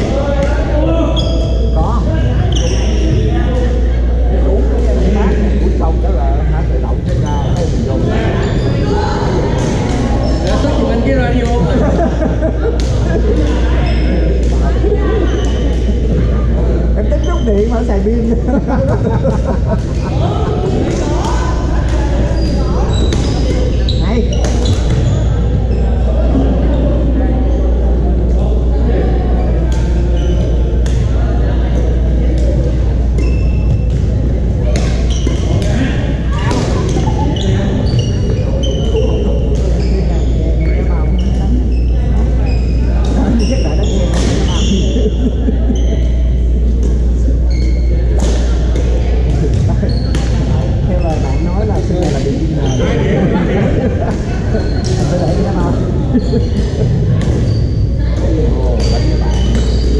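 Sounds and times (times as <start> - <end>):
players chattering: 0.0 - 59.9
steady low hum: 0.0 - 59.9
voices echoing in a hall: 0.0 - 59.9
sneakers squeaking on wooden floor: 1.0 - 3.4, 7.0 - 11.6, 13.7 - 14.4, 15.2 - 16.0, 17.2 - 17.6, 22.1 - 26.1, 29.4 - 30.8, 33.0 - 51.5, 52.1 - 53.0, 54.1 - 59.9.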